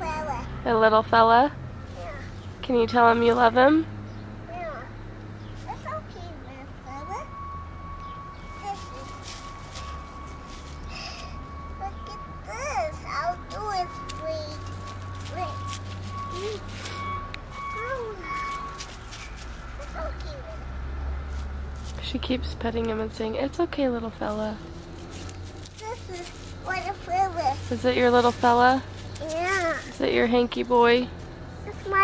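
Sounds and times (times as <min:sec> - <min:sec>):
low engine rumble: 0:00.0 - 0:32.0
high electronic reversing alarm tone: 0:06.9 - 0:19.9.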